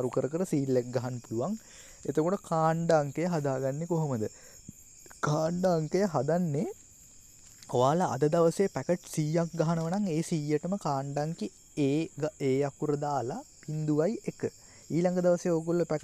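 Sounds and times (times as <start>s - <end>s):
man talking: 0.0s - 4.3s, 5.1s - 6.7s, 7.7s - 16.0s.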